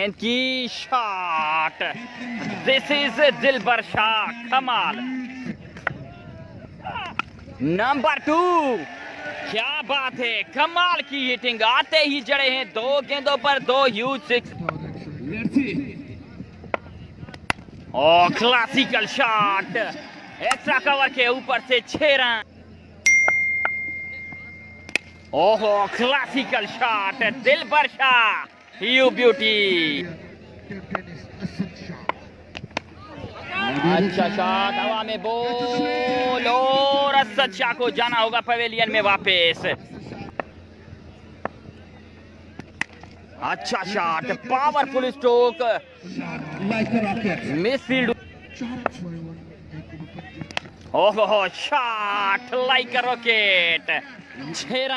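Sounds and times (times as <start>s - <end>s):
steady low hum: 1.9s - 8.8s, 9.4s - 21.5s, 22.1s - 54.7s
cricket bat striking ball: 16.7s - 17.8s, 20.4s - 20.7s, 23.2s - 25.2s, 32.0s - 33.0s, 42.5s - 43.1s.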